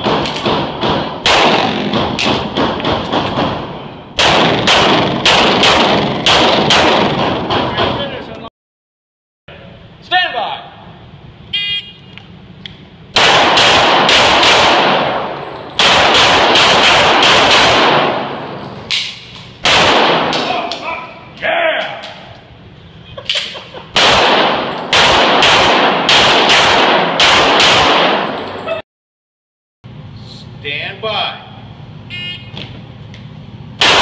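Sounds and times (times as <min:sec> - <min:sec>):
pistol shots echoing indoors: 0:00.0 - 0:07.9, 0:13.1 - 0:20.8, 0:23.9 - 0:28.6, 0:33.8 - 0:34.0
shot timer beep: 0:32.1 - 0:32.5.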